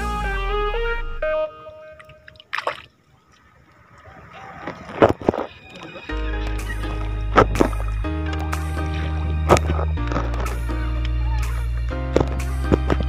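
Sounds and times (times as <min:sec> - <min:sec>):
background music melody: 0:00.0 - 0:02.5, 0:05.2 - 0:13.0
water splashes: 0:01.9 - 0:10.6
water sloshing against a boat: 0:02.0 - 0:13.0.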